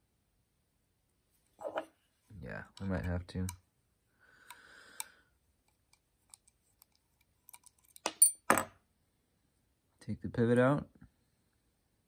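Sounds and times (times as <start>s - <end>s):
small metal clicks and taps: 5.7s - 8.4s.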